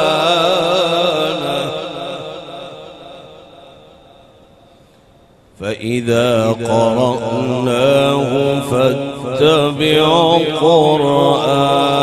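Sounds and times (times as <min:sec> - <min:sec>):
echo of man chanting: 0:00.0 - 0:12.0.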